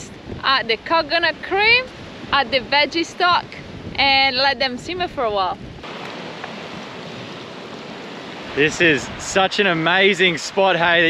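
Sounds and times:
small waves washing onto sand: 5.8 - 11.0.

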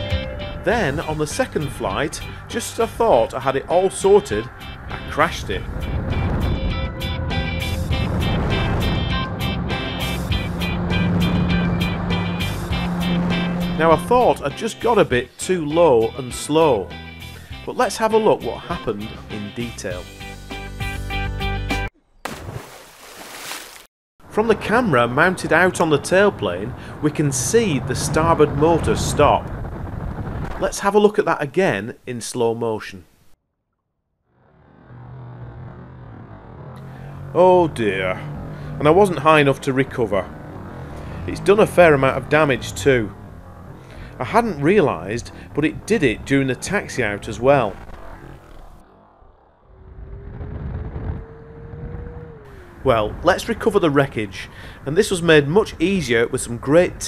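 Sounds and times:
water splashing: 22.2 - 23.9.

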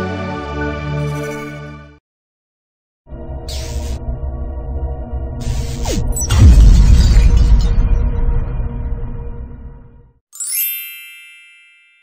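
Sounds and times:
bell-like chime: 10.4 - 12.0.

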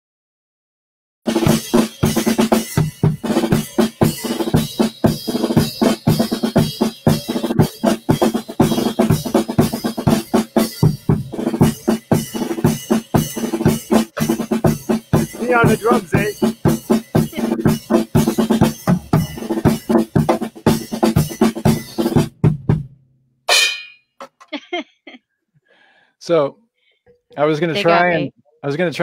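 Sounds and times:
drum kit playing fast: 1.3 - 22.9.

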